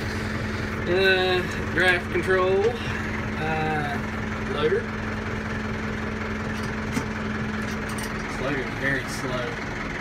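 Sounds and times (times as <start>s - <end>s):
tractor diesel engine idling: 0.0s - 10.0s.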